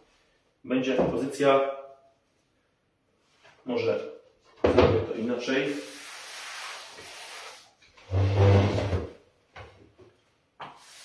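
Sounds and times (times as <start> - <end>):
wooden chair scraping floor: 8.0 - 9.2.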